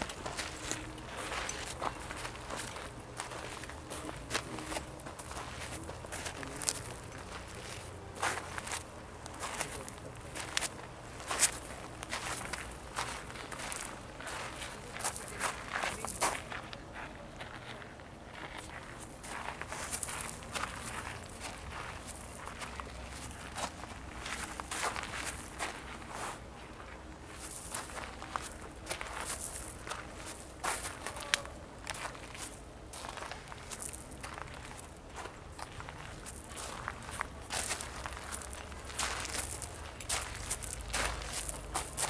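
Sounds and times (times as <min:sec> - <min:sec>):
footsteps walking: 0:00.0 - 0:42.0.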